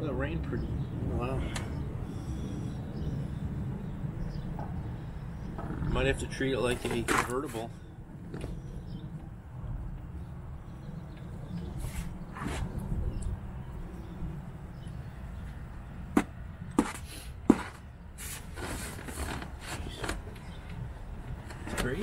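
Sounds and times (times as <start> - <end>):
low steady rumble: 0.0 - 16.8.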